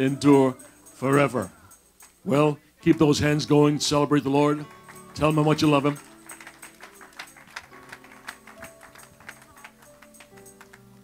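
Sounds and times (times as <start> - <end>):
quiet music of held notes: 0.0 - 11.0
scattered hand claps: 2.0 - 2.2, 2.9 - 3.4, 4.6 - 11.0.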